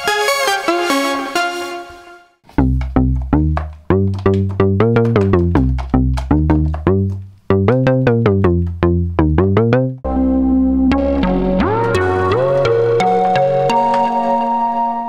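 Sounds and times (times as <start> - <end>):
plucky synth bass notes: 2.5 - 14.8.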